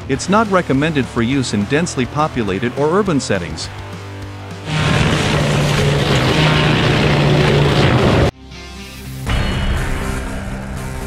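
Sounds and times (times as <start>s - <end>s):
music: 0.0s - 11.0s
mulcher cutting trees: 4.5s - 8.3s
steady low hum: 4.7s - 8.3s.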